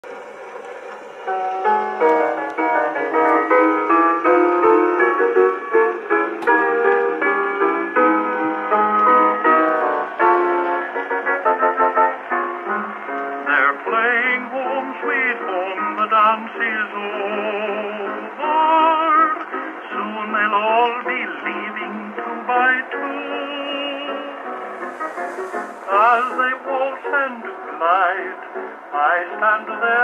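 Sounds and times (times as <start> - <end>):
piano: 0.0 - 30.0
record surface noise: 0.0 - 30.0
tenor singing with vibrato: 13.0 - 30.0.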